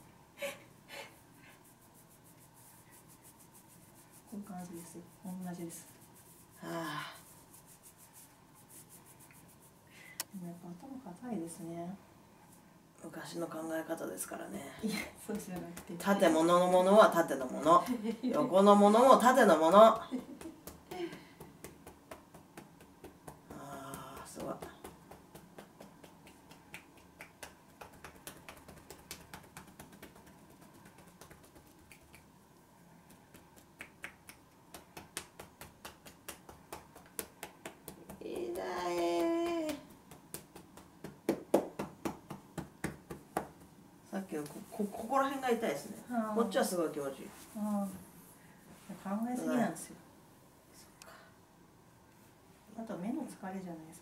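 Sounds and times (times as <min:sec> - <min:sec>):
hands rubbing through towel: 0:01.4 - 0:09.8, 0:19.0 - 0:43.7
fingertips tapping on head: 0:15.3 - 0:17.2, 0:19.2 - 0:32.3, 0:33.0 - 0:43.8.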